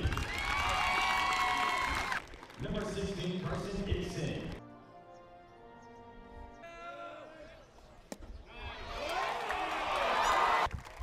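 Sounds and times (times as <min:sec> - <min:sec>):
crowd cheering: 0:00.0 - 0:02.6, 0:08.5 - 0:11.0.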